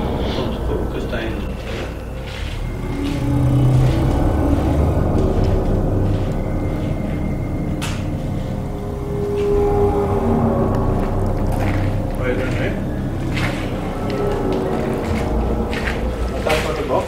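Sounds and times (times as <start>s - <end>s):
dark ambient drone music: 0.0s - 17.0s.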